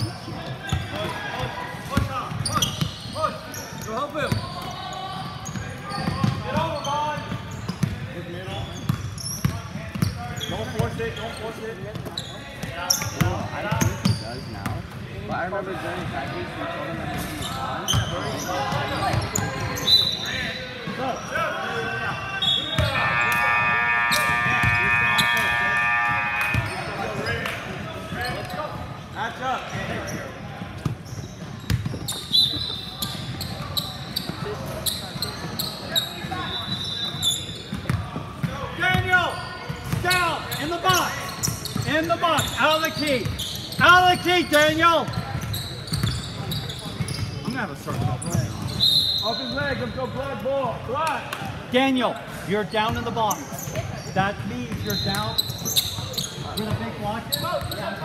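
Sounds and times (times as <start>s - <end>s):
indistinct voices echoing: 21.3s - 28.1s.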